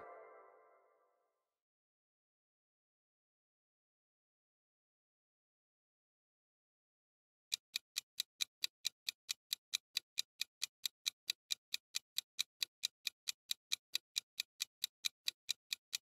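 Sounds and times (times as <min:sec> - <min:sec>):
clock ticking: 0:07.5 - 0:16.0.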